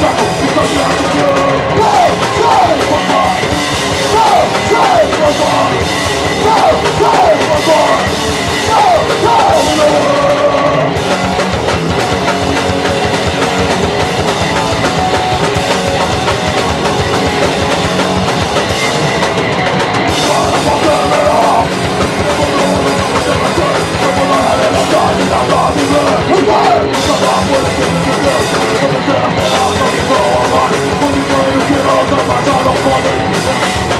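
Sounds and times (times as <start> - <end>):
person singing: 0.0 - 11.0, 20.1 - 33.9
bass guitar: 0.0 - 33.9
drum kit: 0.0 - 33.9
electric guitar: 0.0 - 33.9.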